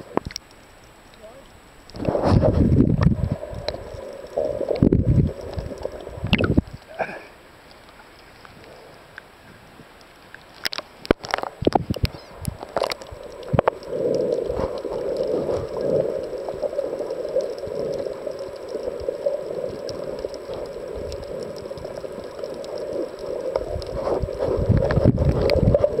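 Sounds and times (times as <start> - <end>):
small clicks and crackles: 0.0 - 26.0
underwater water rush: 0.0 - 26.0.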